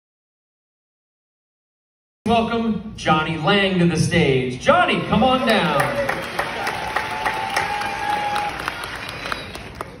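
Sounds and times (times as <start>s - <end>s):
audience applauding: 5.2s - 10.0s.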